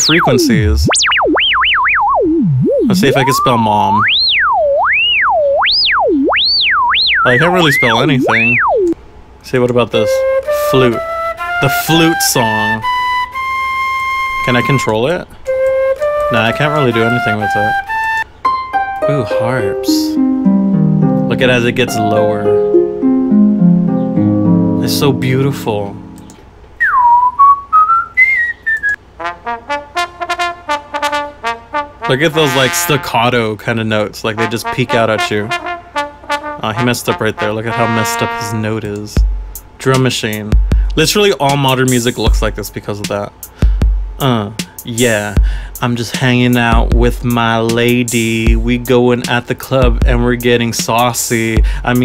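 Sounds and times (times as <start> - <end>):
sine tone sweeping in pitch: 0.0 - 9.0
trombone staccato notes: 29.2 - 33.0, 34.4 - 39.4.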